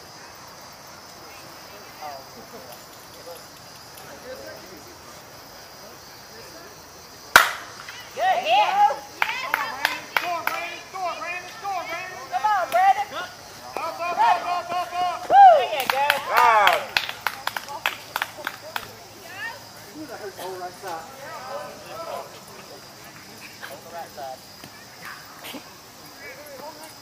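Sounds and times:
bat cracking ball: 7.3 - 8.0
men shouting: 8.1 - 17.0, 19.3 - 24.4.

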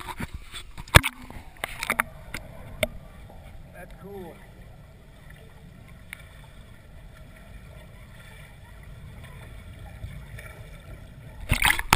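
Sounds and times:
muffled underwater rumble: 0.0 - 11.9.

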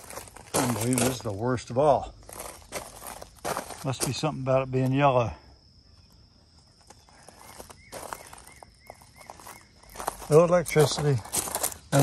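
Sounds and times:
bird chirping: 5.7 - 12.0.

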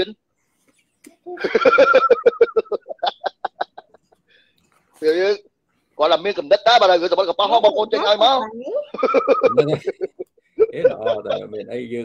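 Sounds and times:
man laughing heartily: 1.3 - 4.1, 9.0 - 11.7.

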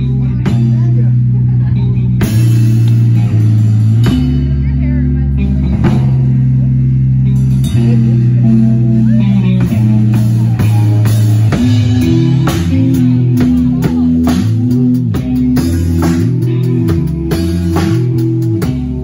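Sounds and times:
bass guitar: 0.0 - 19.0
distorted electric guitar: 0.0 - 19.0
drum kit: 0.0 - 19.0.

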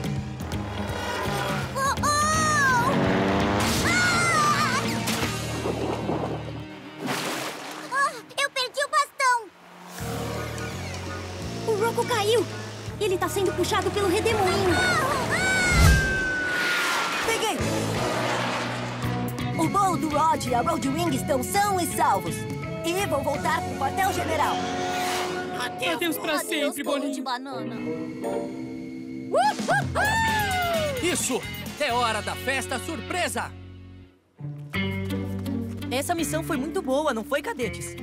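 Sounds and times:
cartoon background music: 0.0 - 16.2, 19.0 - 33.6, 34.4 - 38.0
water splash effects: 4.9 - 8.1, 15.2 - 19.2.

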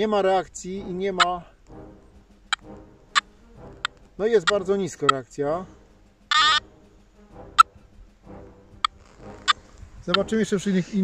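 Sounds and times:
metal detector tones: 6.3 - 6.6.

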